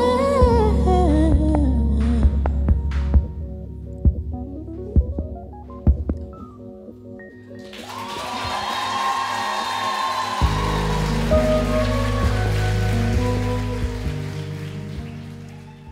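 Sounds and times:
audience applause: 7.6 - 15.9
band playing: 10.4 - 15.7
deep sustained bass chord: 10.5 - 15.2.

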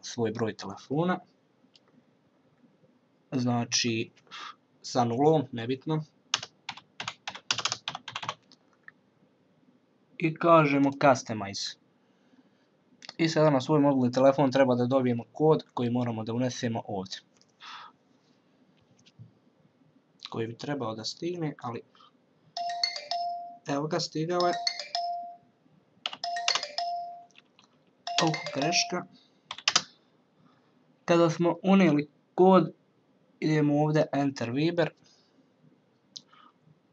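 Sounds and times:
computer keyboard typing: 6.3 - 8.4, 22.6 - 23.4, 24.4 - 25.3, 26.0 - 27.5, 28.1 - 29.9
electronic ringtone tone: 22.6 - 23.7, 24.4 - 25.4, 26.2 - 27.3, 28.1 - 29.1.

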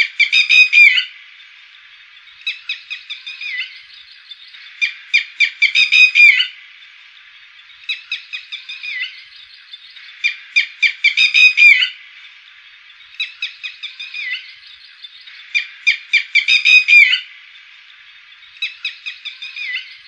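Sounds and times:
lapwing calling: 0.0 - 20.0.

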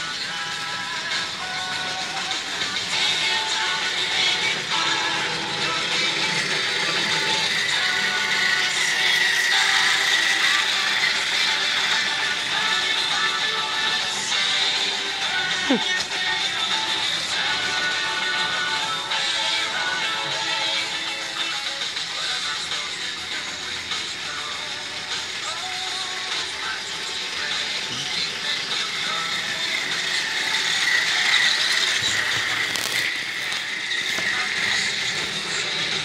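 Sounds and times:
song playing from a laptop: 0.0 - 36.0
toy train motor whirring: 0.0 - 36.0.

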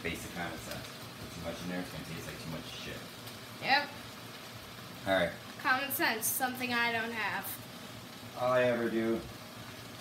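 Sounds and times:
onions sizzling in a pot: 0.0 - 10.0.

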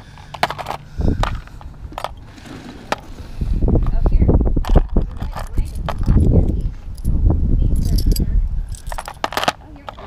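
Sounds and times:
metal jewelry jangling and clicking: 5.2 - 10.0.

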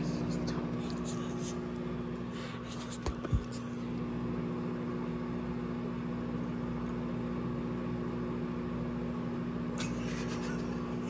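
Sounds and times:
microwave oven humming: 0.0 - 11.0.

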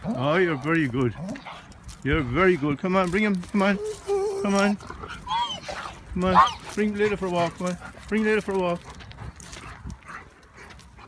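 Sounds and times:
paws scuffling on gravel: 0.0 - 11.0
dog whimpering: 3.8 - 6.7.

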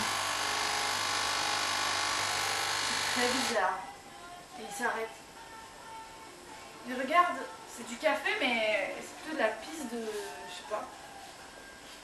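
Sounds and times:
coffee machine pump buzzing: 0.0 - 3.6.

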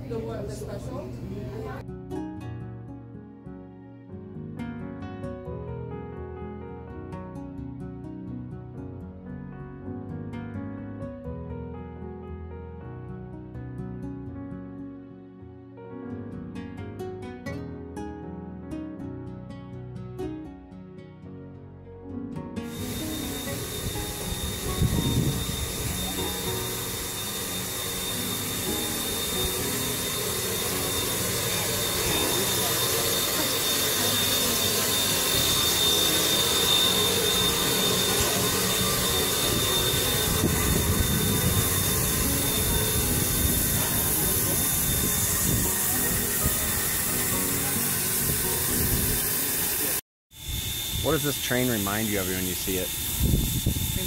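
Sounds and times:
high whistling tone: 22.7 - 54.0
steam locomotive hissing: 22.7 - 54.0.

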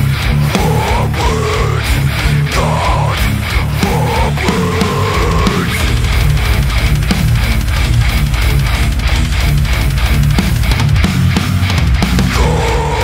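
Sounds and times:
death metal band playing: 0.0 - 13.0.

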